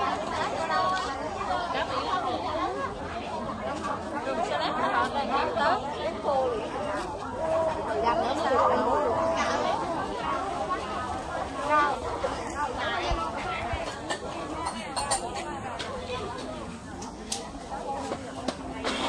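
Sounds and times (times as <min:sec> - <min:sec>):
chatter of many people: 0:00.0 - 0:19.0.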